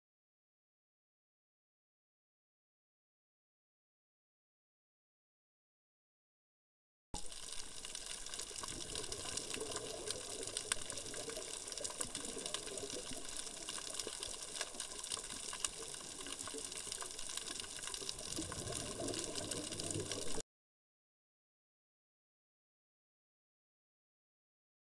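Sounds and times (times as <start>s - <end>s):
underwater clicks and crackles: 7.2s - 20.4s
underwater watery rush: 7.2s - 20.4s.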